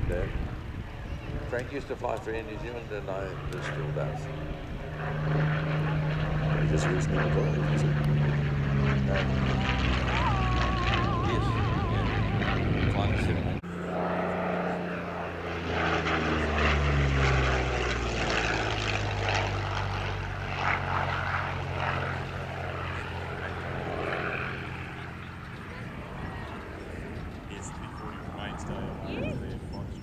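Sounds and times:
aircraft piston engine droning: 0:00.0 - 0:30.0.

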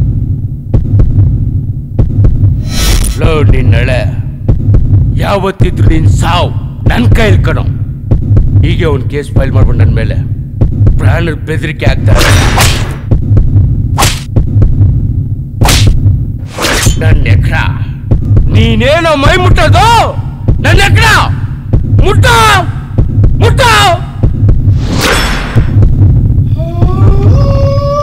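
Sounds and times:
throbbing bass pulse: 0:00.0 - 0:11.3, 0:13.0 - 0:16.4, 0:18.0 - 0:27.6.

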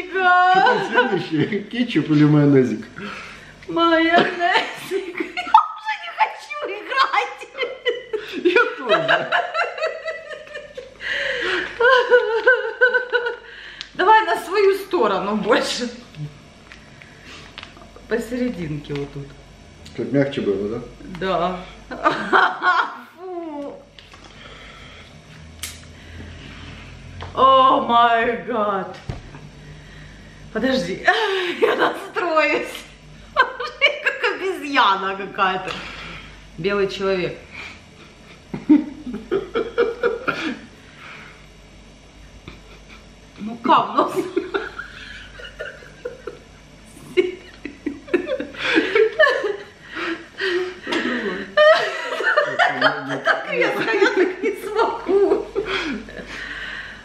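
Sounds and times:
low steady hum: 0:00.0 - 0:57.0
man and woman laughing: 0:00.2 - 0:01.8, 0:04.0 - 0:05.8, 0:06.9 - 0:13.6, 0:21.9 - 0:23.6, 0:31.0 - 0:34.5, 0:37.6 - 0:40.7, 0:42.5 - 0:43.1, 0:44.1 - 0:56.4.

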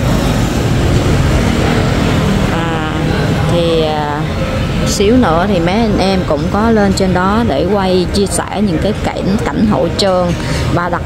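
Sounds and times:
motorbikes and scooters passing: 0:00.0 - 0:11.0.

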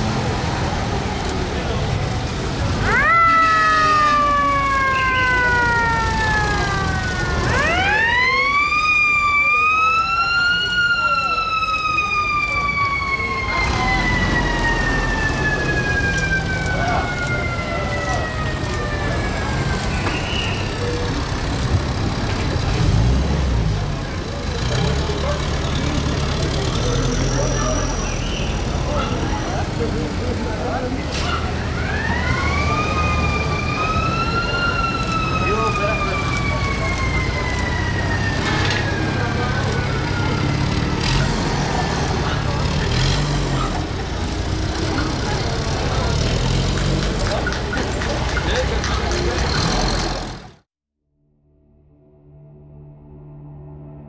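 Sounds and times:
jeep engines running: 0:00.0 - 0:50.6
siren winding up and down: 0:02.7 - 0:20.9, 0:31.6 - 0:41.3.

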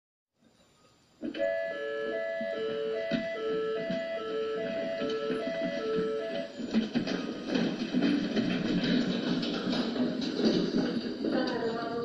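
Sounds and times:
electronic two-tone alarm: 0:01.4 - 0:06.6.

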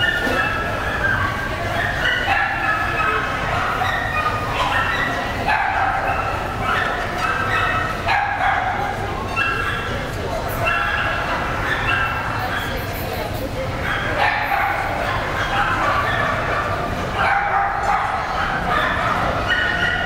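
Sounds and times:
dogs yipping and whining: 0:00.0 - 0:20.0
murmur of voices: 0:00.0 - 0:20.0.

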